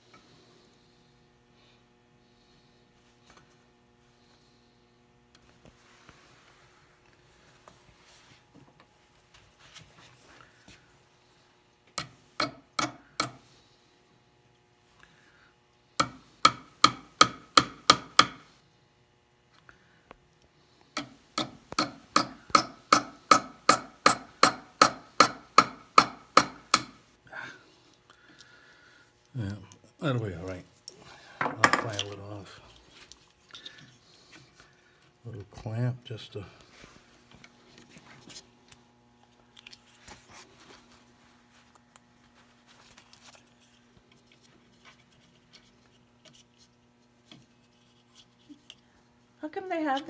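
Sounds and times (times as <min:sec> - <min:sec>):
small hammer tapping on wood: 0:16.0 - 0:18.4, 0:21.0 - 0:27.0.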